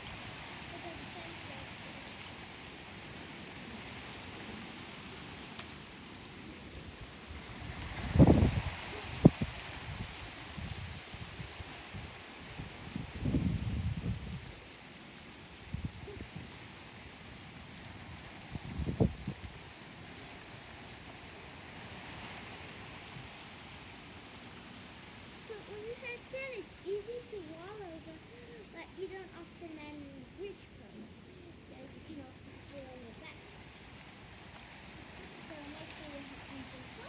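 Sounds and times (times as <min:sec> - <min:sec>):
outdoor hiss: 0:00.0 - 0:37.0.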